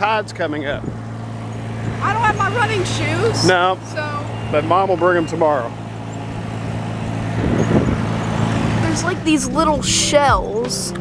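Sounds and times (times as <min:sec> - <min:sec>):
wind on microphone: 0:07.2 - 0:08.2.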